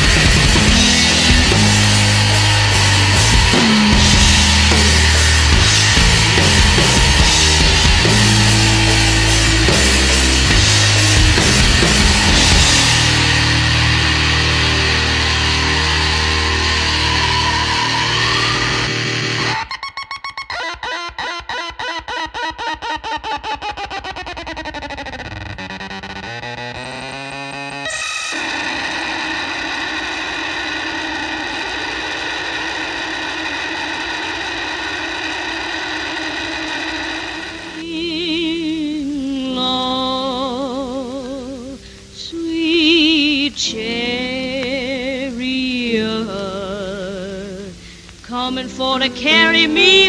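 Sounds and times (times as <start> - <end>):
distorted guitar and bass chord: 0.0 - 37.9
rapid pulsing effect: 0.0 - 37.9
feedback-like tones: 0.0 - 38.2
distorted noise drone: 0.0 - 50.0.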